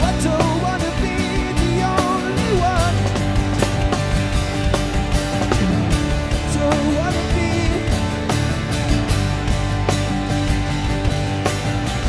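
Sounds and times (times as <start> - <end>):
drum kit beat: 0.0 - 12.0
electric and acoustic guitars: 0.0 - 12.0
wavering lead melody: 4.5 - 8.2.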